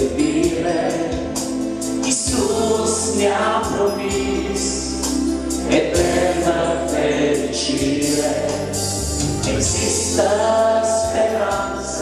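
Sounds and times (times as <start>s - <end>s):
band with bass: 0.0s - 12.0s
group singing worship song: 0.0s - 12.0s.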